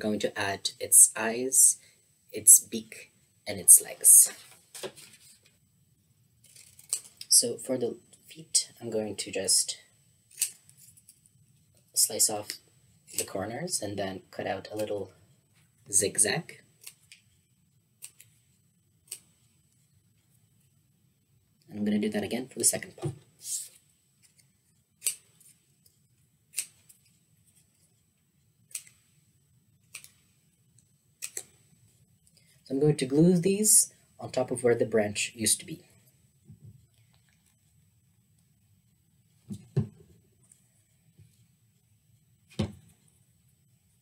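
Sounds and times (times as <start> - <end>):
faint paper handling sounds: 4.2 - 5.6, 6.4 - 7.3
scissors snipping paper: 18.0 - 18.4, 19.0 - 19.4, 26.5 - 27.1, 28.7 - 29.1, 29.8 - 30.2, 31.2 - 31.6.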